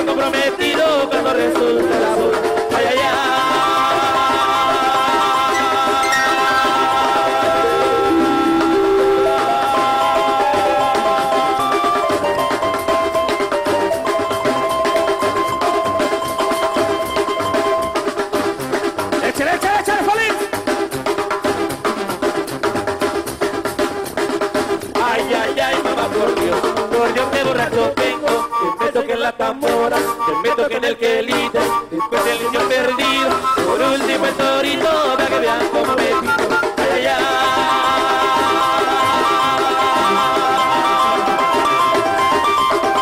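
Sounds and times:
rapid snare and bass drumming: 0.0 - 30.2, 31.2 - 43.0
band playing instrumental music: 0.0 - 43.0
sustained keyboard chords: 6.0 - 15.2.

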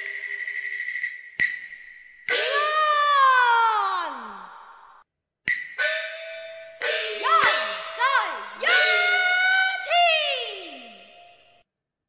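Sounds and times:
sharp percussion strikes: 0.0 - 3.1, 5.5 - 9.9.

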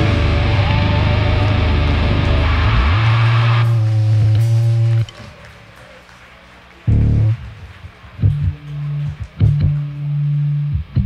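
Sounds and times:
loud low bass hit: 0.0 - 4.9
hardcore band playing live: 0.0 - 5.1.

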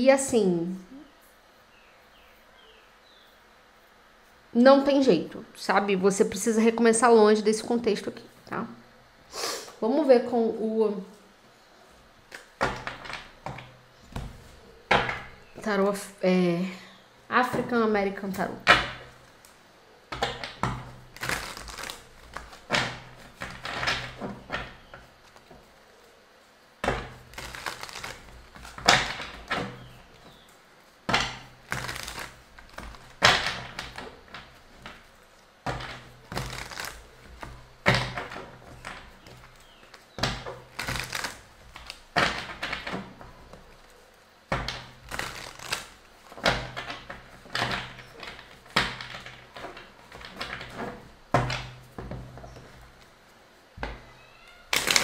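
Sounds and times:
cards being shuffled by hand: 20.2 - 26.2, 26.9 - 51.2, 54.7 - 55.0.

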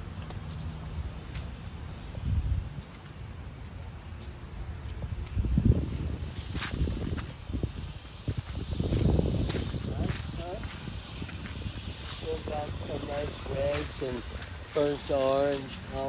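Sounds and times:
footsteps through dry leaves: 0.0 - 16.0.

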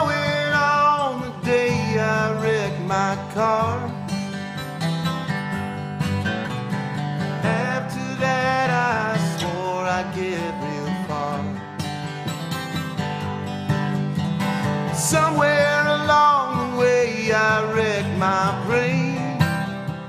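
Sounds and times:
man singing: 0.0 - 4.1, 7.4 - 11.9, 14.8 - 19.9
strummed acoustic guitar: 0.0 - 20.0.

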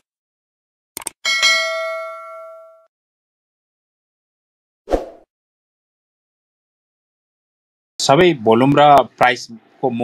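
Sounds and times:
bell ding: 1.2 - 2.9.

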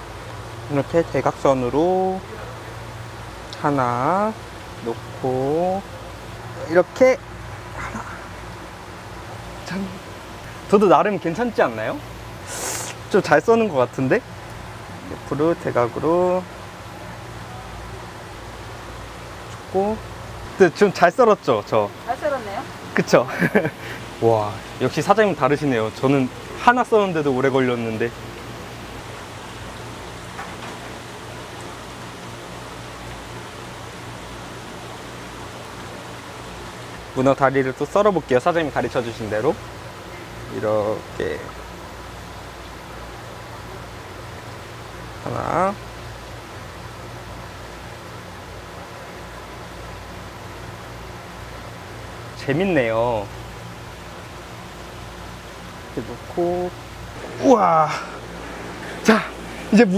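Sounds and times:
water rushing hiss: 0.0 - 59.9.

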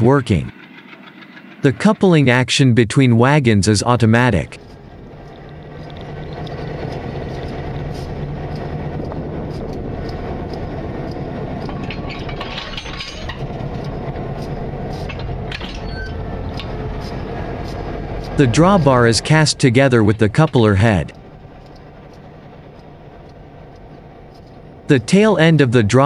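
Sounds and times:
diesel locomotive engine rumble: 0.0 - 26.0
light metallic clinks: 10.0 - 16.7.

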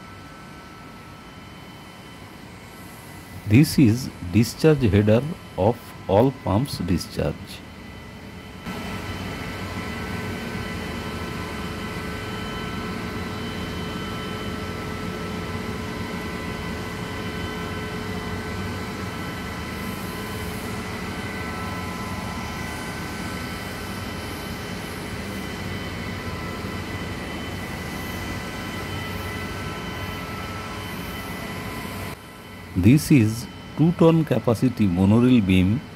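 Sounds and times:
high-pitched whine tones: 0.0 - 35.9.

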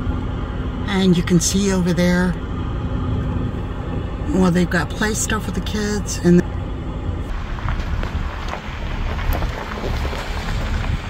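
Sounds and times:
wind buffeting microphone: 7.1 - 11.0.

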